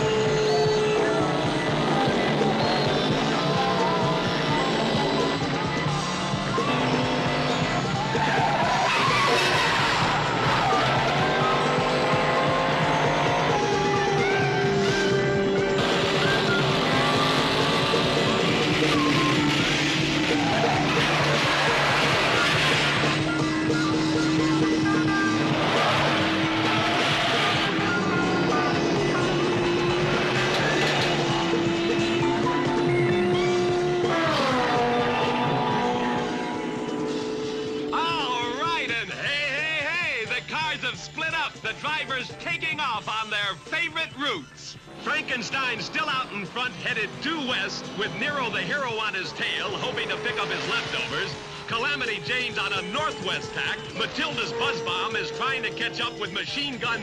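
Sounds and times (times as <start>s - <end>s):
race car engines revving and passing: 0.0s - 42.8s, 44.4s - 57.0s.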